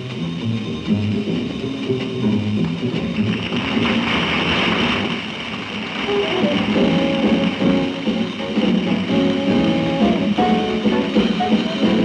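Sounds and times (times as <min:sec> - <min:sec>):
double bass: 0:00.0 - 0:05.2, 0:05.9 - 0:12.0
piano chords: 0:00.0 - 0:12.0
tenor saxophone: 0:06.1 - 0:12.0
drum cymbals: 0:06.4 - 0:12.0.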